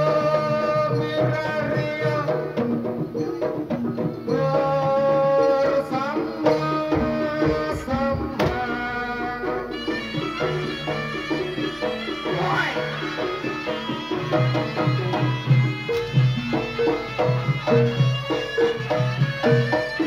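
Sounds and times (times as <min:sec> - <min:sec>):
gamelan ensemble music: 0:00.0 - 0:07.7, 0:08.7 - 0:20.0
hand drums steady beat: 0:00.0 - 0:20.0.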